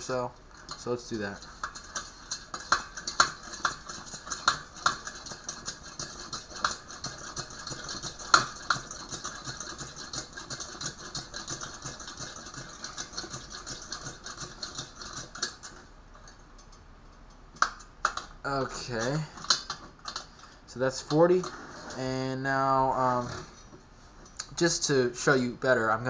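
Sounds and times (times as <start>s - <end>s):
hand air pump clicking strokes: 0.6s - 15.8s.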